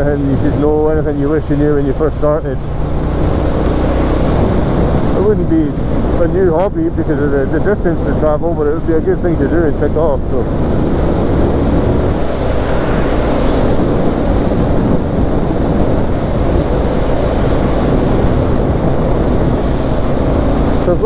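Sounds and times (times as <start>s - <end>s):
motorcycle engine cruising: 0.0s - 21.0s
wind on microphone: 0.0s - 21.0s.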